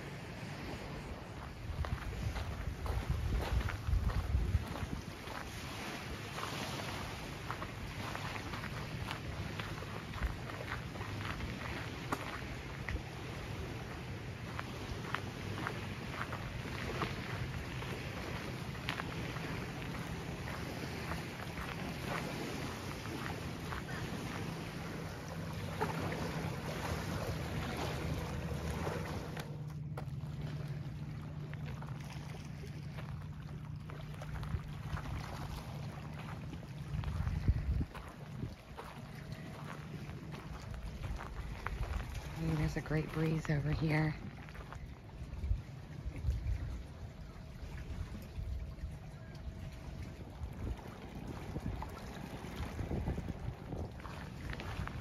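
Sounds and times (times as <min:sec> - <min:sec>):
low steady hum: 0:00.0 - 0:55.0
wind on microphone: 0:00.6 - 0:10.5, 0:34.3 - 0:44.0, 0:45.0 - 0:55.0
footsteps on gravel: 0:01.2 - 0:13.1, 0:14.4 - 0:30.8, 0:31.4 - 0:45.0.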